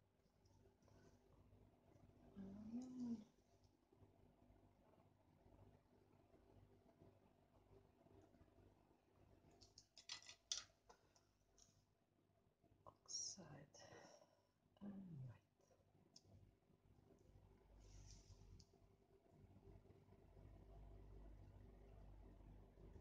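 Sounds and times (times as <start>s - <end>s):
low murmur of a person: 2.4s - 3.4s.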